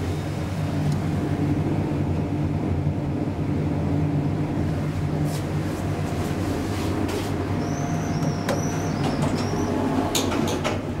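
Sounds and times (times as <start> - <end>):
elevator machinery humming: 0.0 - 11.0.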